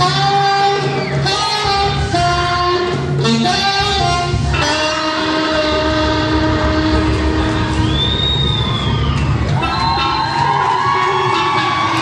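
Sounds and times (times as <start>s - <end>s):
saxophone long low note: 0.0s - 9.1s.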